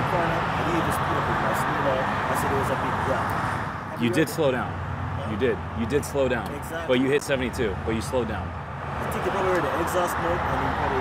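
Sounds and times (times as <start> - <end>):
men talking quietly: 0.0 - 11.0
road traffic rumble: 0.0 - 11.0.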